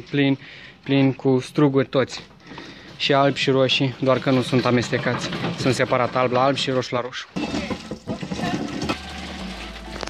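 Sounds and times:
grape crusher churning: 2.5s - 10.0s.

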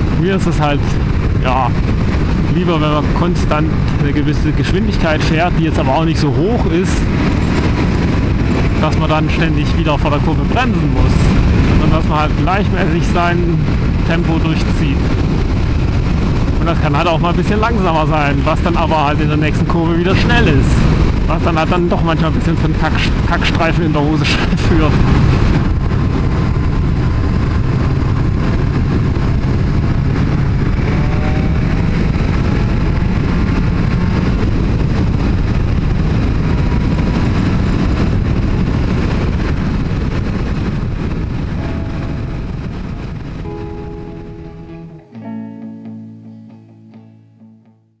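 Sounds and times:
wind on helmet microphone: 0.0s - 45.2s
motorcycle engine: 18.9s - 23.6s, 24.4s - 45.5s
music with plucked notes: 41.6s - 47.9s.

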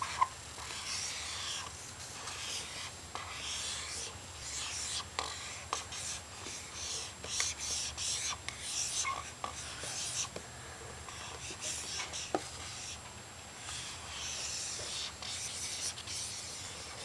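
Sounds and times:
marker rubbing on whiteboard: 0.0s - 10.3s, 11.1s - 13.0s, 13.6s - 17.0s
marker tip tapping: 7.2s - 7.8s.

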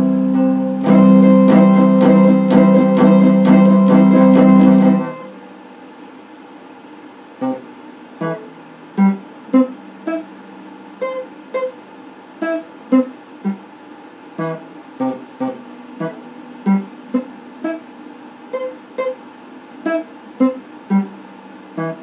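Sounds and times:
electric guitar slow melody: 0.0s - 5.3s.

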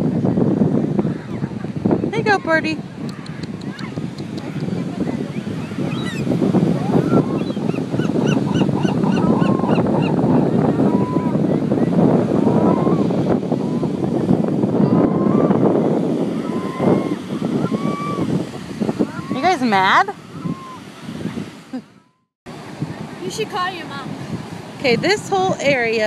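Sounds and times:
surf: 0.0s - 21.8s, 22.5s - 26.0s
wind: 0.0s - 26.0s
gull calls: 20.3s - 20.8s.

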